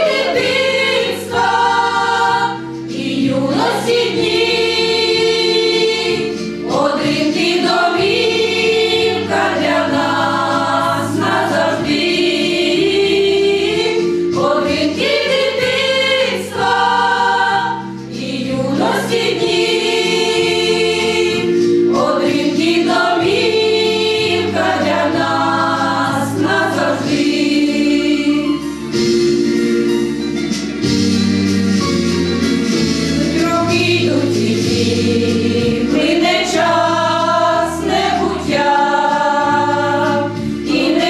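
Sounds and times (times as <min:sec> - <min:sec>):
women singing in harmony: 0:00.0 - 0:28.7, 0:33.2 - 0:41.0.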